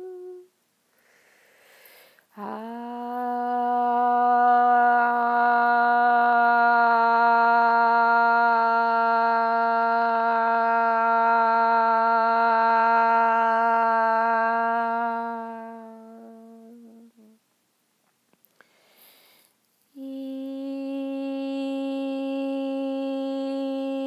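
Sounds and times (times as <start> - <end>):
person humming a long note: 0.0 - 0.5, 2.3 - 17.4, 20.0 - 24.0.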